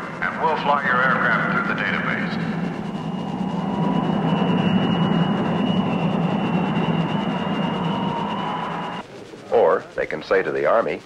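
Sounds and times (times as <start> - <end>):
faint high whine: 0.0 - 11.0
jet aircraft roar: 0.0 - 11.0.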